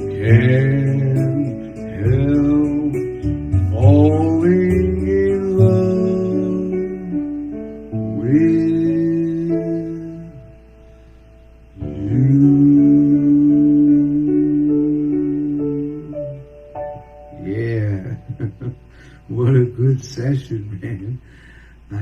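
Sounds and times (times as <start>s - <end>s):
man singing karaoke: 0.0s - 7.4s, 8.1s - 10.6s, 11.8s - 16.3s
acoustic guitar backing track: 0.0s - 11.2s.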